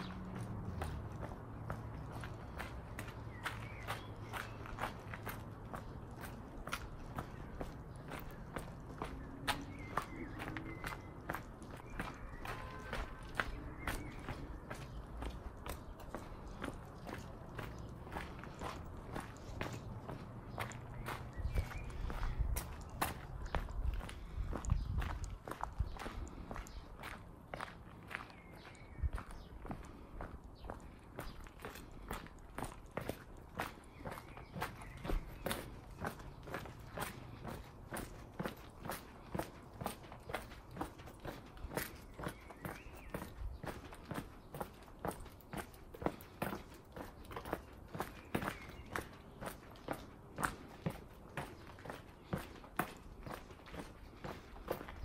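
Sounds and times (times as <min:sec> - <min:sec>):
footsteps on cobblestones: 0:00.0 - 0:55.0.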